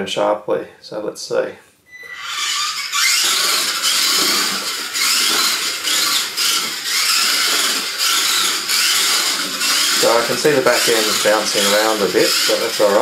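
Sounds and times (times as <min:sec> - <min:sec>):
rc car motor whine: 0:01.9 - 0:13.0.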